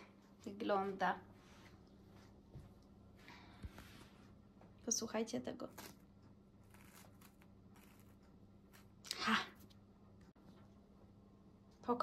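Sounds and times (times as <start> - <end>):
crackles of dry meringue crust: 6.6 - 9.3.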